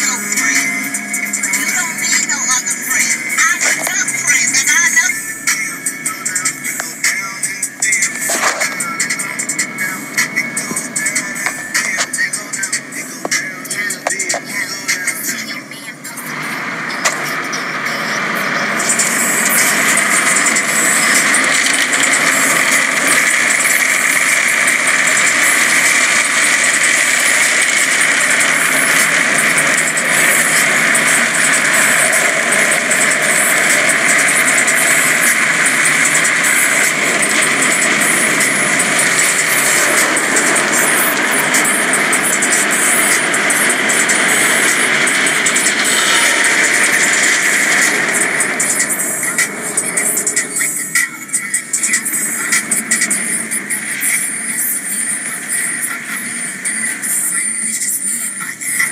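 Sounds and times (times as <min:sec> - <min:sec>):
car wash spraying water: 0:00.0 - 0:58.9.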